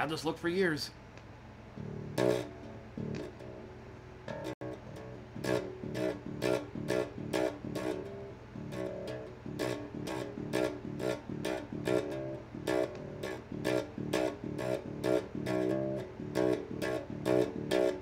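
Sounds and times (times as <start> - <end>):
electric bass notes plucked: 1.8 - 18.0.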